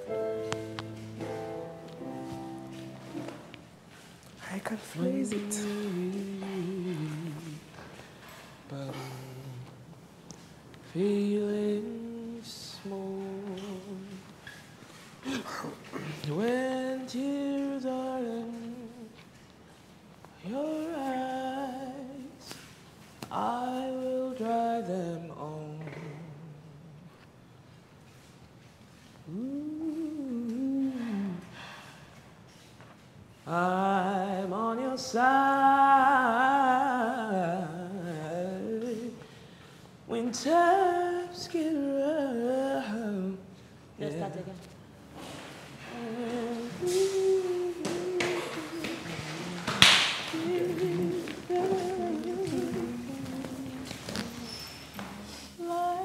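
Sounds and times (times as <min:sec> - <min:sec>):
woman singing unaccompanied: 0:04.4 - 0:07.8, 0:20.4 - 0:22.5, 0:40.1 - 0:43.4, 0:45.8 - 0:56.0.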